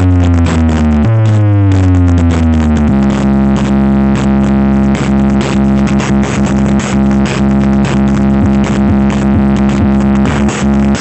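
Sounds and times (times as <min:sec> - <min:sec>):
deep synth bass glide: 0:00.0 - 0:11.0
loud electronic music: 0:00.0 - 0:11.0.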